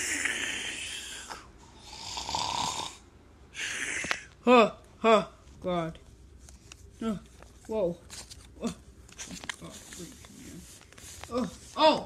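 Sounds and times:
person imitating snoring: 0.0s - 3.0s, 3.6s - 4.2s.

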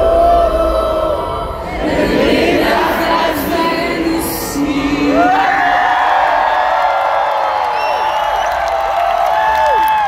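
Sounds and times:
crowd cheering and whooping: 5.1s - 10.0s.

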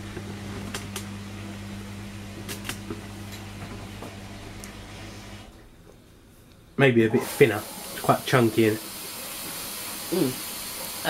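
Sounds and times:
kitchen appliance electrical hum: 0.0s - 11.0s.

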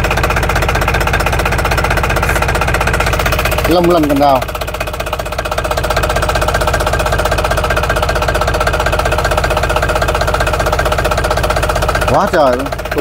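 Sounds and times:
diesel engine running: 0.0s - 13.0s.

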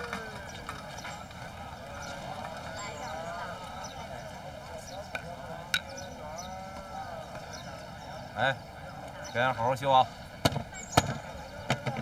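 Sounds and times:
street crowd murmuring: 0.0s - 12.0s.

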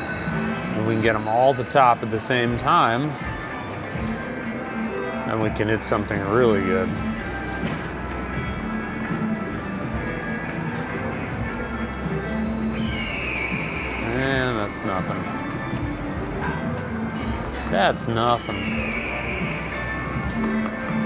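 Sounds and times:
slot machine game music: 0.0s - 21.0s
galloping hoofbeat effects: 11.2s - 21.0s.

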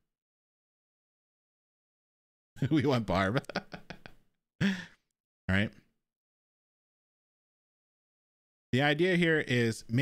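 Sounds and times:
man laughing: 2.6s - 5.0s
man speaking: 8.8s - 10.0s.

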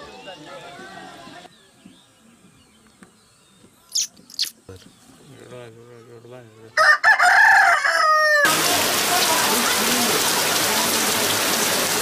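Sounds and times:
rooster crowing: 6.8s - 8.6s
heavy rain on metal roof: 8.5s - 12.0s
water dripping from eaves: 8.5s - 12.0s.

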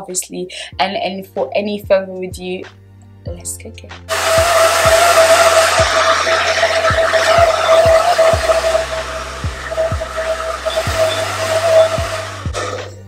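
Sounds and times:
background music with bass beat: 1.9s - 13.0s
hair dryer blowing with whine: 4.1s - 12.9s.

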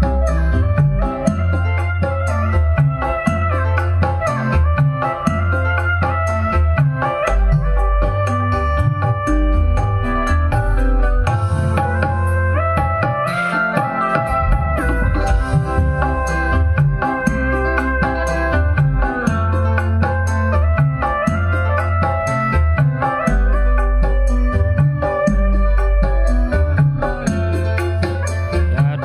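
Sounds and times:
loud music with heavy bass: 0.0s - 29.0s.

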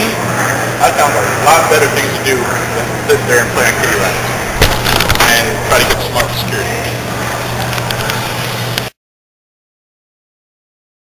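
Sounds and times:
steady low hum: 0.0s - 9.0s
handheld camera rustling and clicks: 4.6s - 6.0s.

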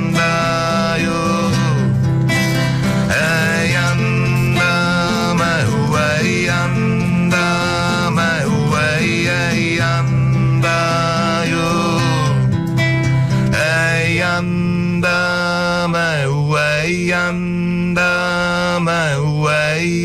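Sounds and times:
steady bass: 0.0s - 15.7s
guitar accompaniment: 0.0s - 20.0s.

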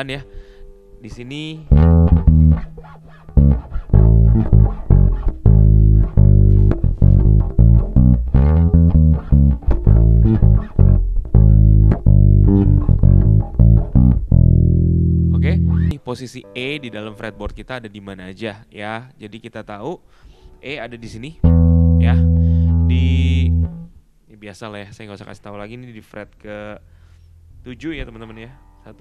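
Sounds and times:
plucked electric bass line: 1.6s - 16.0s, 21.4s - 23.9s.

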